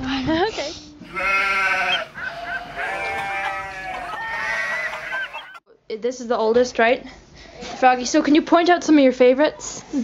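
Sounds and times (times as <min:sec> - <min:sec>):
sheep bleating: 0:01.0 - 0:05.6.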